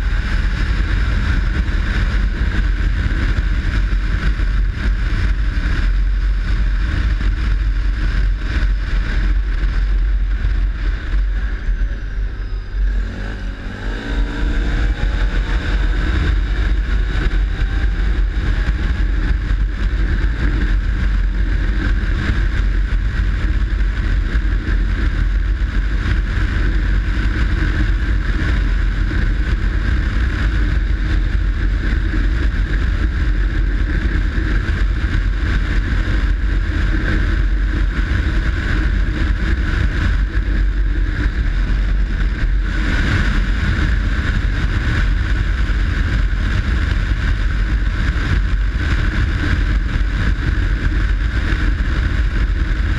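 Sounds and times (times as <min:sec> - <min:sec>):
atv engine accelerating: 0:00.0 - 0:52.9.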